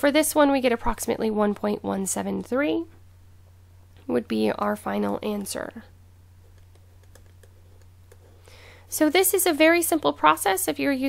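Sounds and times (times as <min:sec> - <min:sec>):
low electrical hum: 0:00.0 - 0:11.0
stylus tapping on pen tablet: 0:06.5 - 0:08.3.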